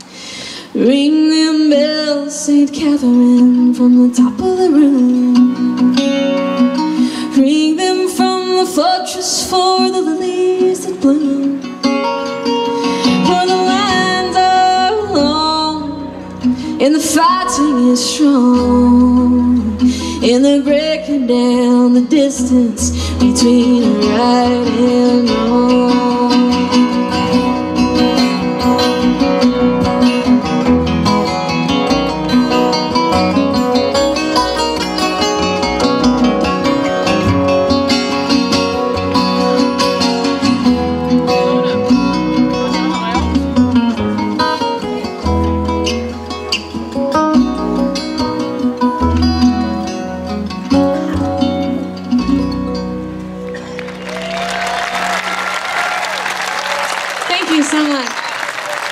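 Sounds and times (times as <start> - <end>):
acoustic guitars playing folk: 0.0 - 58.9
bass: 0.0 - 58.9
audience applause and cheers: 53.4 - 58.9.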